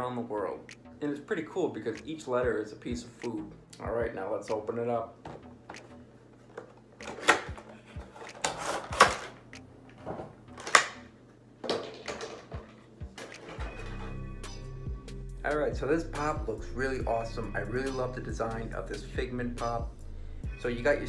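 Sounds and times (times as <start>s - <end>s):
background music: 0.0s - 21.0s.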